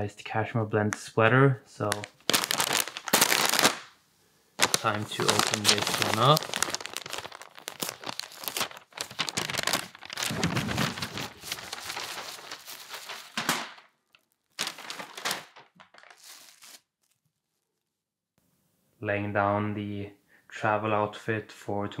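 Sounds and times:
tissue paper crinkling: 1.8 - 3.9, 4.6 - 17.2.

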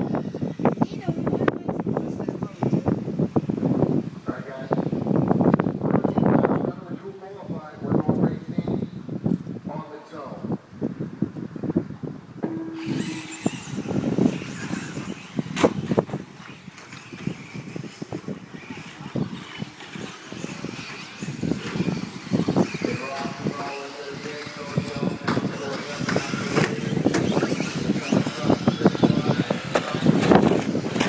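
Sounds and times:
small motors whining: 0.0 - 3.6, 12.5 - 31.0.

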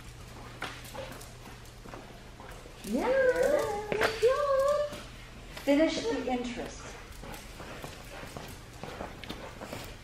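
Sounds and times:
low room hum: 0.0 - 10.0
footsteps on concrete: 3.4 - 10.0.

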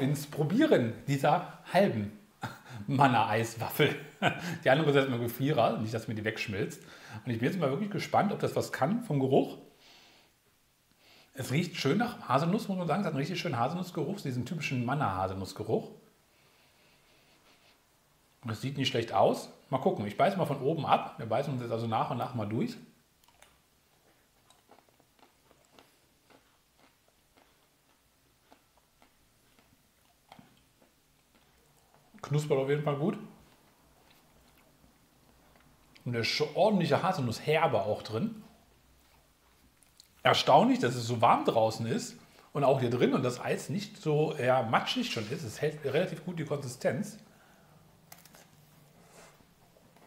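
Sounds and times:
soft crackles: 23.2 - 40.4.

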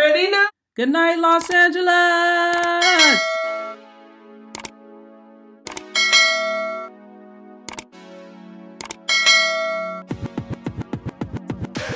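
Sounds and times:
mouse clicks: 1.4 - 1.6, 2.5 - 2.9
bright bell chime: 2.8 - 3.8, 6.0 - 6.9, 9.1 - 10.0.

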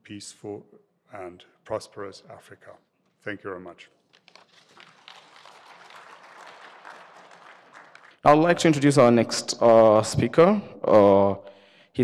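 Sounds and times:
audience applause: 4.6 - 8.2.

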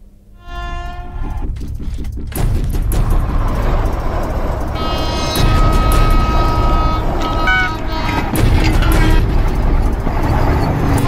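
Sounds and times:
music: 0.3 - 11.0
train running on track: 0.4 - 11.0.

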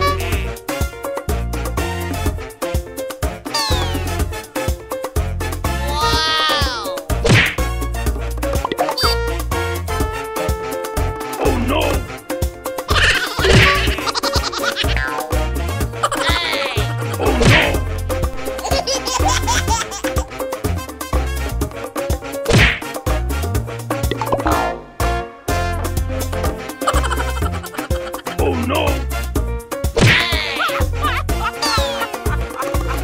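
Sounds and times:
upbeat background music: 0.0 - 33.0
axe whacking log: 7.2 - 7.6, 17.4 - 17.8, 22.5 - 22.8, 30.0 - 30.2.

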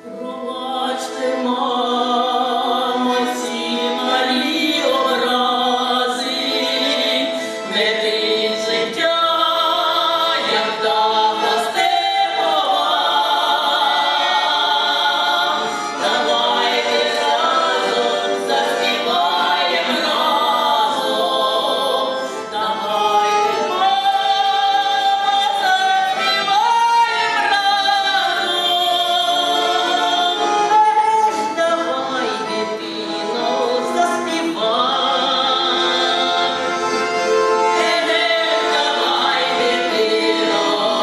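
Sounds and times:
women singing into microphone: 0.0 - 36.8, 37.6 - 41.0
accordions playing: 0.0 - 41.0.

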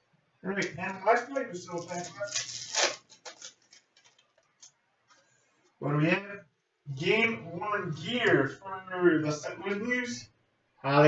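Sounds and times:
cards clicking and sliding: 0.6 - 4.2
cards rustling: 0.6 - 5.3.

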